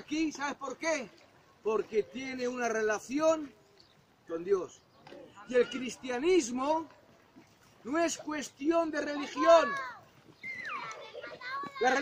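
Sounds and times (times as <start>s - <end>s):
man speaking: 0.0s - 3.6s, 4.3s - 6.9s, 7.8s - 9.8s, 11.8s - 12.0s.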